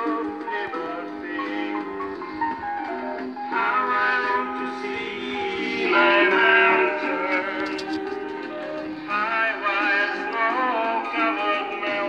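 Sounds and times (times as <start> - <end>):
song from record player: 0.0 - 12.0.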